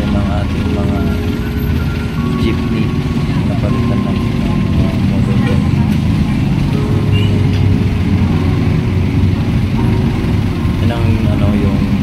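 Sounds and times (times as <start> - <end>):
traffic engine rumble: 0.0 - 12.0.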